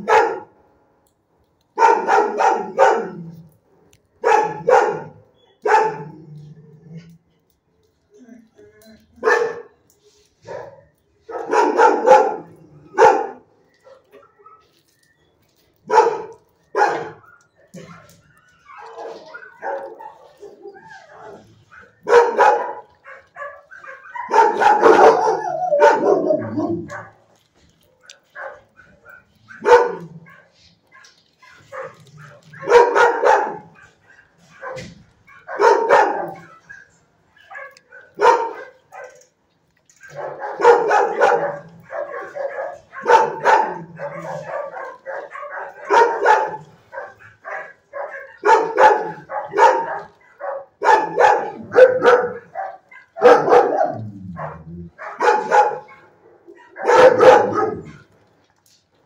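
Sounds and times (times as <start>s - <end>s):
dog barking: 0.0s - 0.6s, 1.8s - 3.4s, 4.2s - 6.2s, 9.2s - 9.8s, 10.4s - 14.8s, 15.9s - 27.4s, 28.0s - 39.2s, 39.9s - 58.1s.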